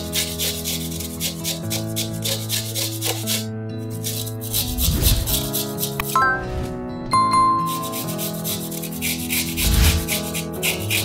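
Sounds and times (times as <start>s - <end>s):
carrot rasping on grater: 0.0s - 6.2s, 7.8s - 11.0s
background music: 0.0s - 11.0s.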